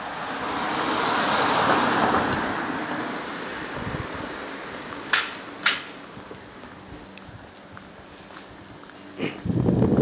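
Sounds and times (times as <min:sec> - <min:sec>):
vehicle passing: 0:00.0 - 0:09.1.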